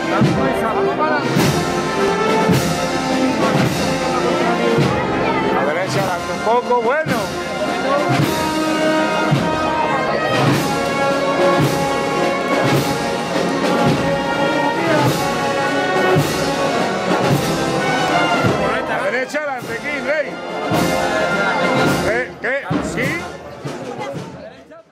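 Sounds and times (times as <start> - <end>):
brass band playing a march: 0.0 - 24.5
voices: 0.0 - 24.9.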